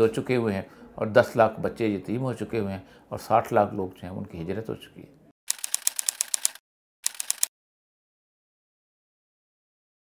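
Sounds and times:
typewriter key clicks: 5.5s - 7.5s.

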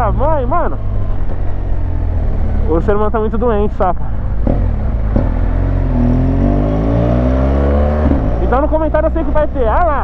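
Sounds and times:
motorcycle engine accelerating: 0.0s - 9.9s.

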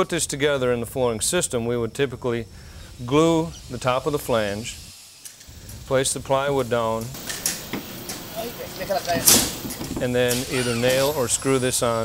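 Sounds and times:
construction site noise: 3.1s - 12.0s
sharp hissing knock: 7.0s - 11.2s
plywood sheet set on joists: 7.1s - 11.4s.

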